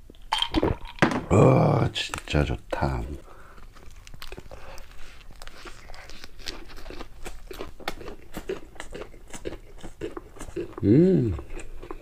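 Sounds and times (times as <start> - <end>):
crisp chewing crunches: 3.5 - 12.0.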